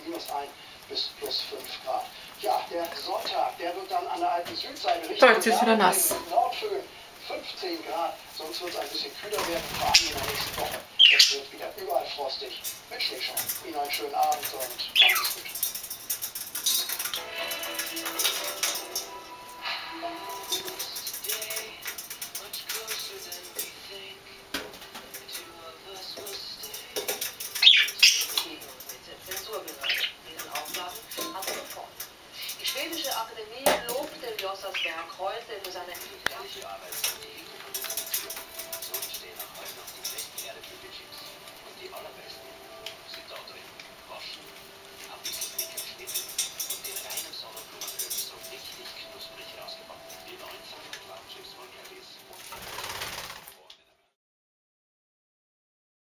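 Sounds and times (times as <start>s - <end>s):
bird wingbeats: 9.3s - 11.1s, 52.3s - 53.6s
budgerigar chirping: 10.9s - 11.4s, 14.9s - 15.4s, 27.6s - 28.3s.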